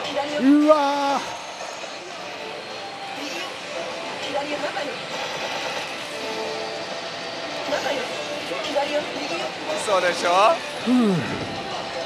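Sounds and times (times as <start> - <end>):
slot machines clattering: 3.5 - 6.8.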